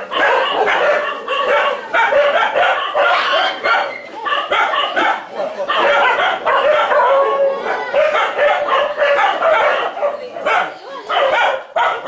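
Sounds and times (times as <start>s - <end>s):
pack of dogs barking: 0.0s - 12.0s.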